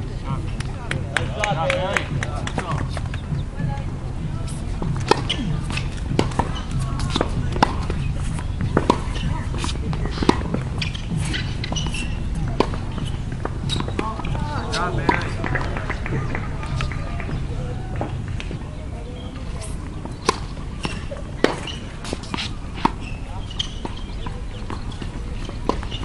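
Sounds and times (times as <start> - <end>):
distant voices: 0.0 - 26.0
steady low rumble: 0.0 - 26.0
tennis ball hit by rackets: 4.2 - 18.6, 19.4 - 26.0
ball bouncing on hard court: 4.8 - 18.6.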